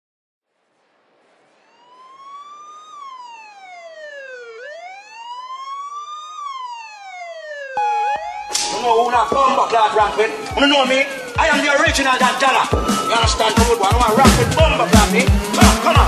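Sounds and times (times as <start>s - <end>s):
wailing siren: 1.5s - 16.0s
steady tone: 14.0s - 15.7s
sharp hit: 14.0s - 16.0s.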